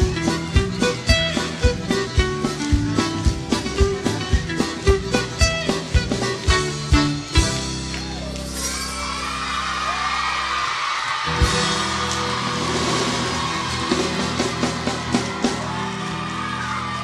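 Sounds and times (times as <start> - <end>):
live band playing: 0.0 - 17.0
audience yelling and whooping: 7.8 - 17.0.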